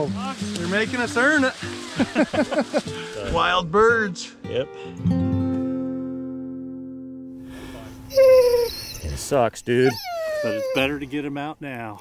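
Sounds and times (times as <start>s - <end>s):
acoustic guitar chord ringing: 3.8s - 7.9s
dog whining: 8.1s - 11.0s.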